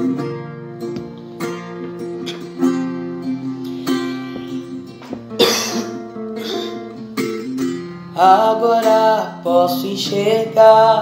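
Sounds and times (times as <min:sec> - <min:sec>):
acoustic guitar chords: 0:00.0 - 0:11.0
loud cough: 0:05.4 - 0:07.0.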